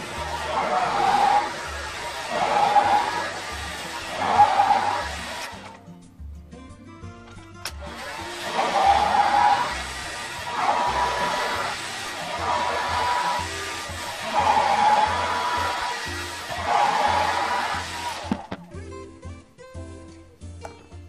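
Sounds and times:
hair dryer blowing with whine: 0:00.0 - 0:05.8, 0:07.7 - 0:18.6.

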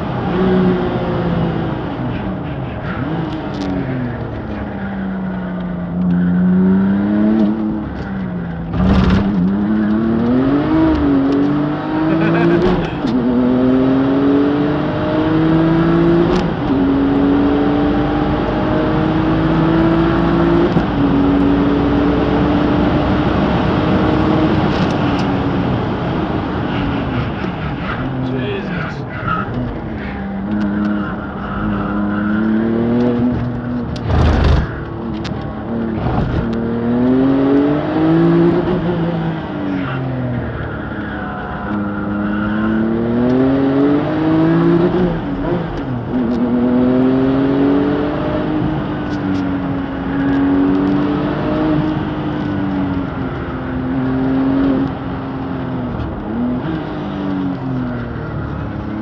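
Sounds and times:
sports car engine accelerating: 0:00.0 - 0:59.0.

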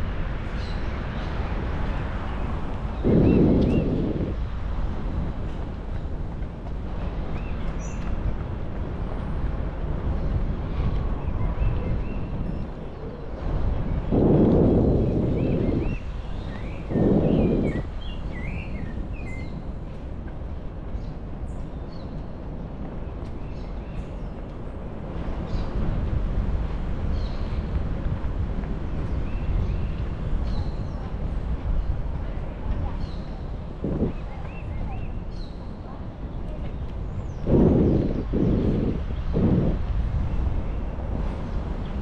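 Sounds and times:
birds chirping: 0:00.5 - 0:04.4, 0:11.2 - 0:19.8, 0:33.0 - 0:42.0
low rumble: 0:02.0 - 0:05.9, 0:13.6 - 0:16.0, 0:33.7 - 0:34.8, 0:36.6 - 0:41.2.

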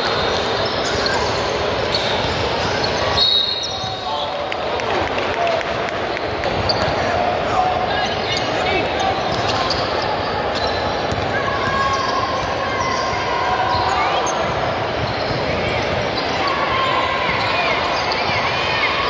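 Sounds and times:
din of voices in echoing hall: 0:03.8 - 0:19.0.

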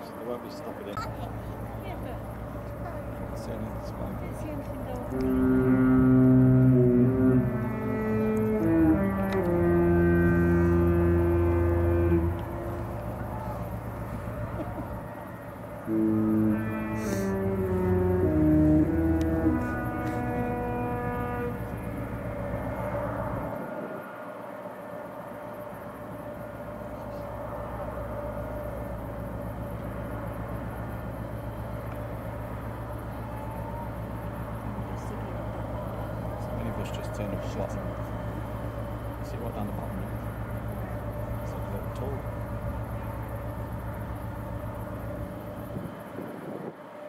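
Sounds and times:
ship horn: 0:00.0 - 0:47.0
low rumble: 0:01.2 - 0:46.4.

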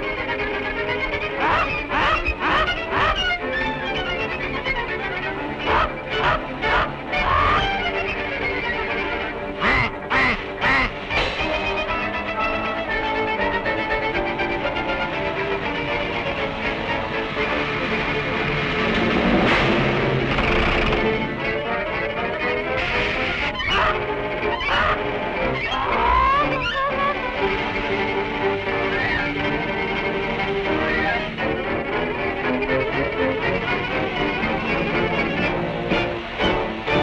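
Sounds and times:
orchestral background music: 0:00.0 - 0:37.0
cartoon duck quacking: 0:01.4 - 0:03.3, 0:05.6 - 0:07.8, 0:09.6 - 0:10.9, 0:23.6 - 0:25.1.

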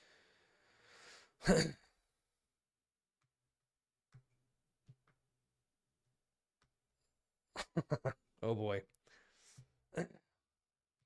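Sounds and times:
man breathing in softly: 0:00.0 - 0:01.4, 0:09.0 - 0:09.7.

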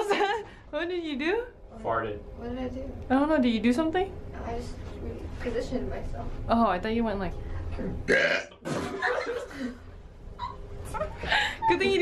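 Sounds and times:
loud burp: 0:08.1 - 0:09.0.

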